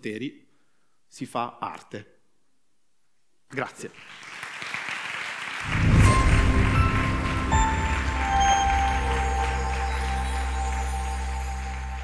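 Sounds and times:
audience applause: 4.0s - 12.0s
music with deep bass: 5.7s - 12.0s.

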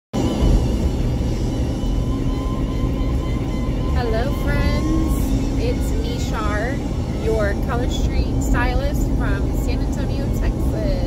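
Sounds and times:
voices or music: 2.2s - 11.0s.

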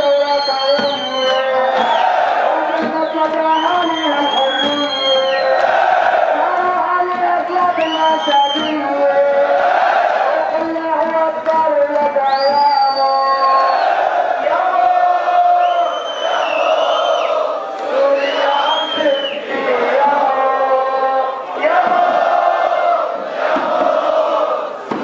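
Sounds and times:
crowd chanting: 0.0s - 11.6s, 13.3s - 25.0s.

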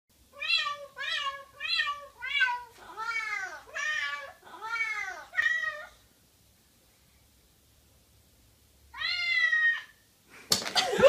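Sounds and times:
cat meowing: 0.4s - 6.0s, 8.9s - 10.0s.

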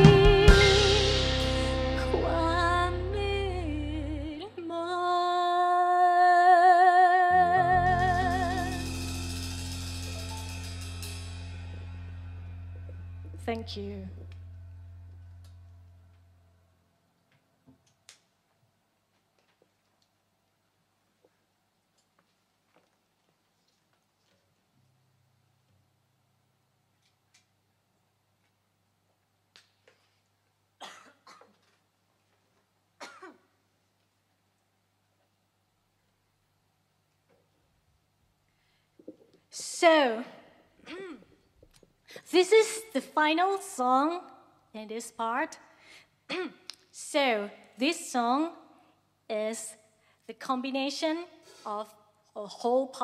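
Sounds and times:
cymbals shimmering: 0.0s - 3.2s, 7.9s - 16.3s
sustained keyboard and bass notes: 0.0s - 4.4s, 7.3s - 16.7s
person clearing throat: 30.8s - 31.6s, 33.0s - 33.5s, 40.8s - 41.5s, 46.3s - 46.7s
person coughing: 30.8s - 31.6s, 33.0s - 33.5s, 40.8s - 41.5s, 46.3s - 46.7s.

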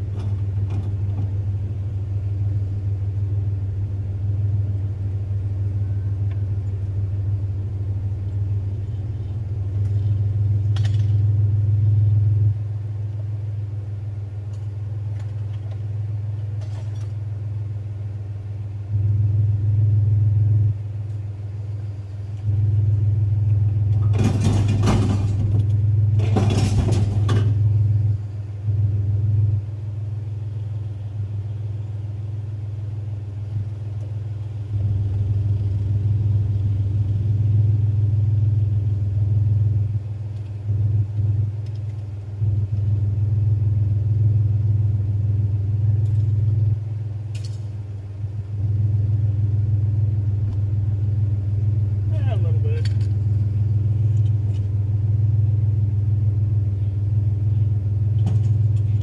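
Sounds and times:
truck engine idling: 0.0s - 59.0s.

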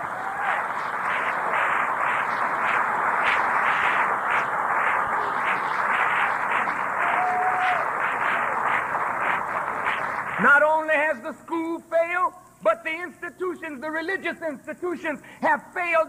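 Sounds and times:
audience applauding: 0.0s - 10.8s.

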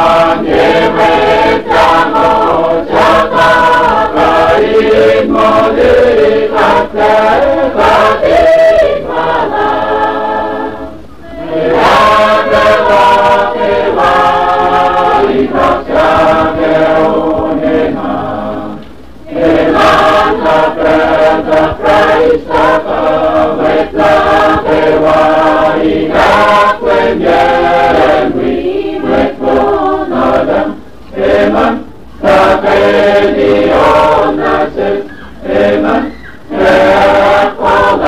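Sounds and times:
mixed choir singing a hymn: 0.0s - 38.0s.

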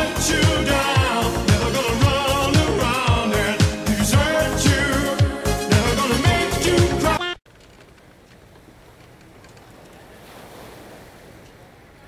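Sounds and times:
sea and wind wash: 8.1s - 12.0s.

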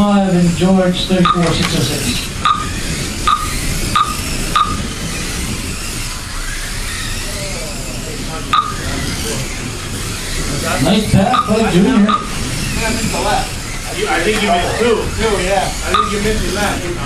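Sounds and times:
small electric motors whining: 0.0s - 17.0s.

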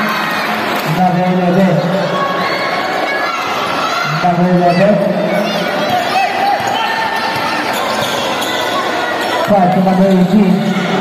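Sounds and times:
sneakers squeaking: 4.7s - 11.0s.

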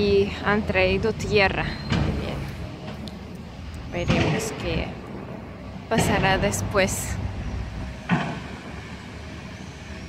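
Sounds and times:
city traffic: 0.0s - 10.0s.

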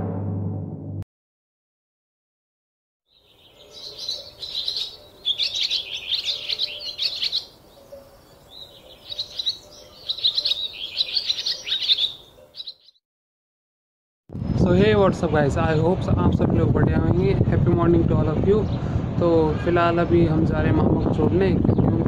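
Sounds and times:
small birds chirping: 3.1s - 13.0s.

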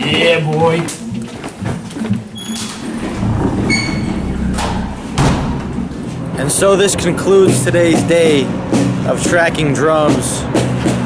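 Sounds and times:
door opening and closing: 2.4s - 6.1s
high squeaks: 2.4s - 6.3s
sharp bangs: 2.6s - 7.9s.

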